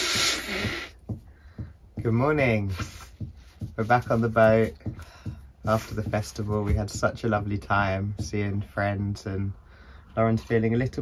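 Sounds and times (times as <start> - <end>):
person blowing nose: 0.0 - 1.0.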